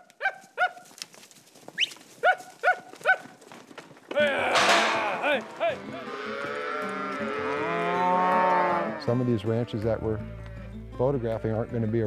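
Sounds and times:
dog barking: 0.2 - 0.8, 2.2 - 3.3
dog yelping: 0.2 - 0.8, 2.2 - 3.3.

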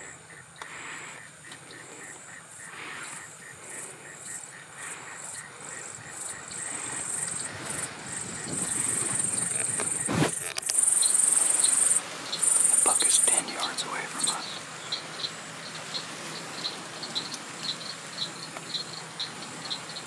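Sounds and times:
insects trilling: 0.0 - 20.0.

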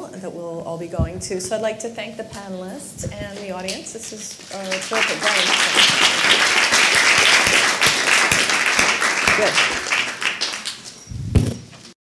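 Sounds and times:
audience applause: 4.5 - 11.0
low thump: 11.2 - 11.7.

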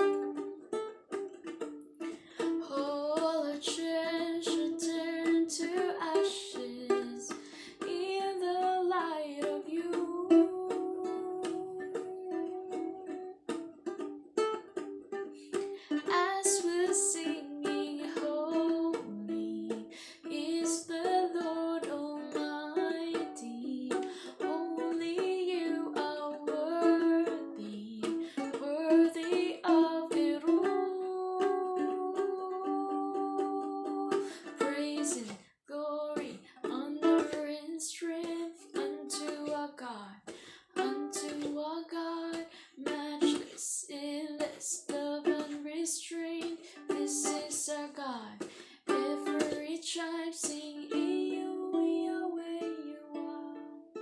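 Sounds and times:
ukulele strumming: 0.0 - 54.0
woman singing: 2.1 - 13.5, 15.5 - 53.9.

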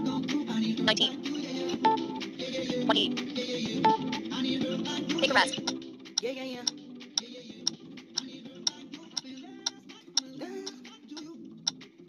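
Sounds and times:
countdown timer ticking: 5.2 - 5.8.

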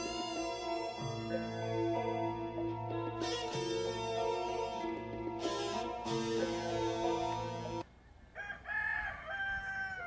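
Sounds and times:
guitar music: 0.0 - 7.8
rooster crowing: 8.3 - 10.0.

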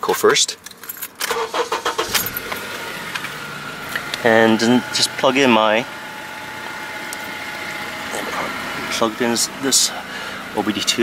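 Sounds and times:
car engine idling: 1.4 - 11.0.

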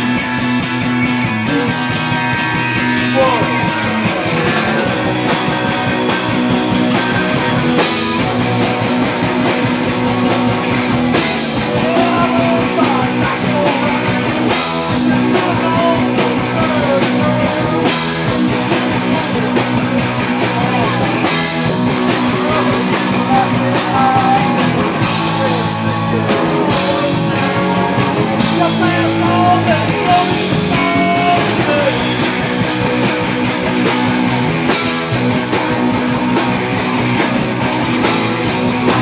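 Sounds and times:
bass guitar: 0.0 - 39.0
drum kit: 0.0 - 39.0
electric guitars: 0.0 - 39.0.

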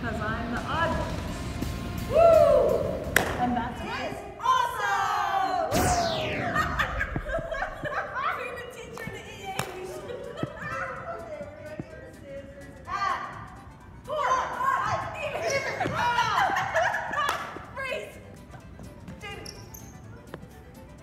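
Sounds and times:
music with falling swoop: 5.7 - 8.6
women laughing and calling out: 14.1 - 18.2.

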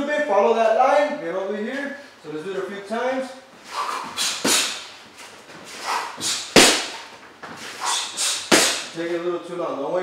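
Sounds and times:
boxing glove smacking mitt: 4.1 - 4.8, 6.2 - 7.6, 8.4 - 9.0.

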